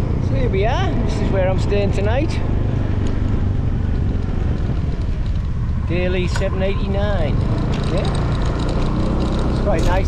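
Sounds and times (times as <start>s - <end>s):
motorbike engine and road rumble: 0.0s - 10.0s
wind buffeting microphone: 0.0s - 10.0s.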